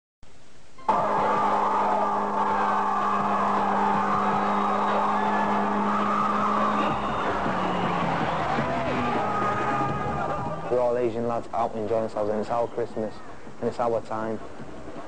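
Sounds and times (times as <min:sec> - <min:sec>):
car engine at high revs: 0:01.4 - 0:08.0.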